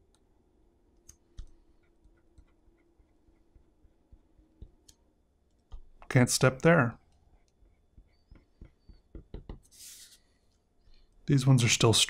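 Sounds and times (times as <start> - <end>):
marker scratching on paper: 7.4 - 10.2.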